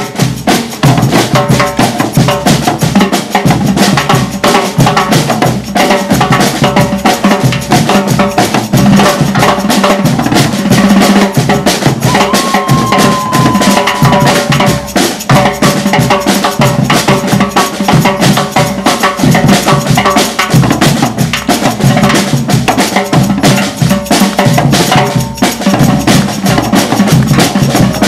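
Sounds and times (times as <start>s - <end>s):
jingle shaker: 0.0s - 28.0s
samba drums: 0.0s - 28.0s.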